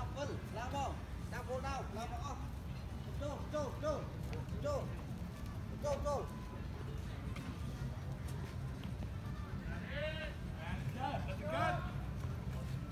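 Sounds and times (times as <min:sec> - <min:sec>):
low street rumble: 0:00.0 - 0:12.9.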